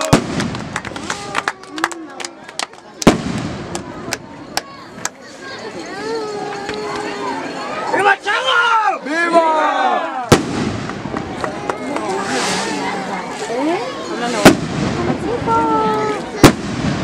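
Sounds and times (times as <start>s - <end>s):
firecracker bangs: 0.0s - 1.2s, 3.0s - 3.9s, 10.3s - 11.4s, 14.4s - 15.6s, 16.4s - 17.0s
crowd voices: 0.0s - 17.0s.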